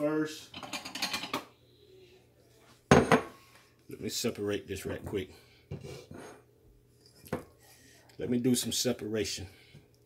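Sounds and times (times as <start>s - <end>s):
kitchenware clattering: 0.4s - 1.5s, 2.9s - 3.4s.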